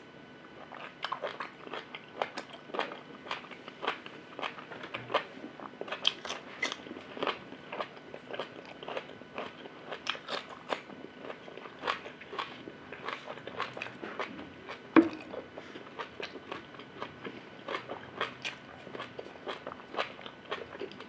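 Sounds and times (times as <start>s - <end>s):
person chewing crunchy food: 0.6s - 21.0s.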